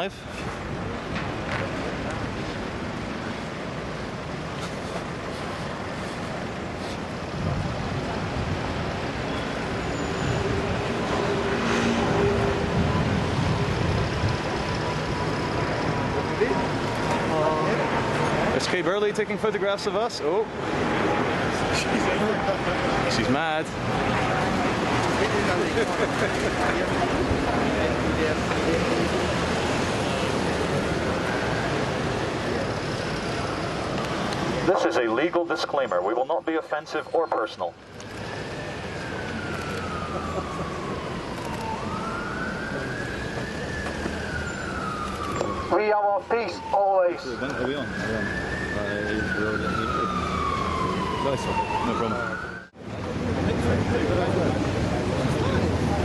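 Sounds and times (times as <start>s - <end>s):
road traffic noise: 0.0s - 56.0s.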